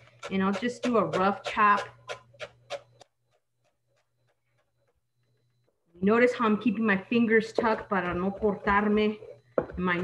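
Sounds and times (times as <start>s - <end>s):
knife chopping on cutting board: 0.2s - 2.9s.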